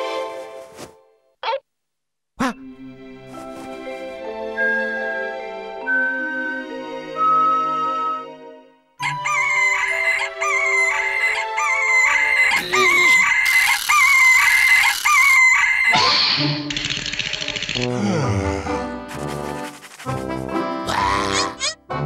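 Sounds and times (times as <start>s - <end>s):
light background music: 2.4s - 13.7s
cartoon rooster crowing: 9.0s - 16.0s
harsh rasping cry: 9.3s - 15.9s.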